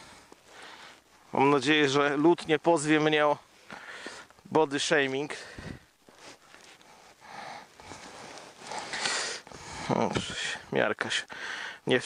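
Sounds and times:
snow and clothing rustling: 0.0s - 10.6s.

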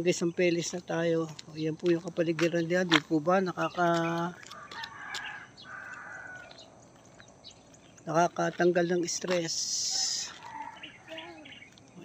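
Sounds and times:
rooster crowing: 4.5s - 6.7s, 9.9s - 11.2s.

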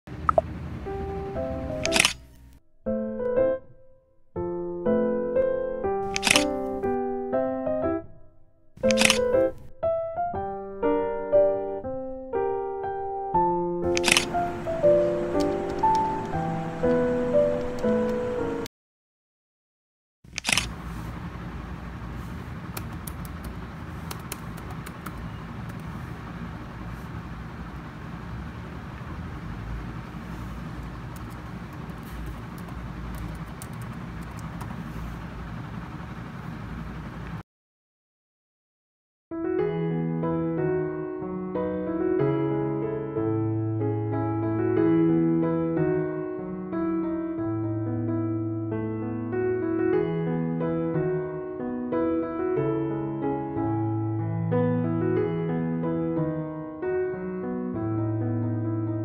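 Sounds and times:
steady low rumble: 0.1s - 2.6s, 20.5s - 37.4s
soft electric piano music: 0.2s - 18.7s, 39.4s - 59.0s
camera shutter clicks: 1.8s - 2.4s, 6.1s - 6.8s, 8.8s - 9.6s, 13.9s - 14.6s, 20.3s - 20.7s
laptop keyboard typing: 1.8s - 2.4s, 6.0s - 6.7s, 8.8s - 9.6s, 13.8s - 17.0s, 22.6s - 26.0s, 30.8s - 34.9s.

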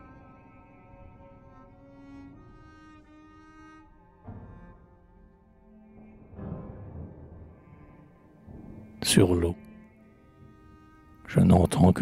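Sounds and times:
slow bowed string music: 0.0s - 12.0s.

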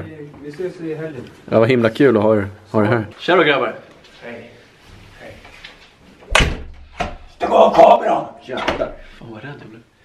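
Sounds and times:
door slamming shut: 6.3s - 7.3s.

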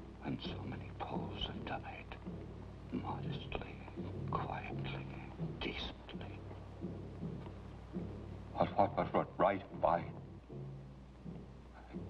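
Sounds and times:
low steady hum: 0.0s - 12.0s
whispered voices: 0.2s - 2.3s, 2.9s - 6.6s, 11.7s - 12.0s.

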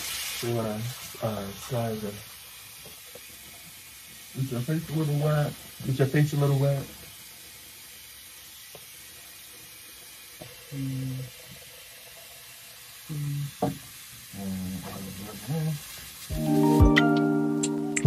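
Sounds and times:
music with chiming notes: 16.3s - 18.0s.

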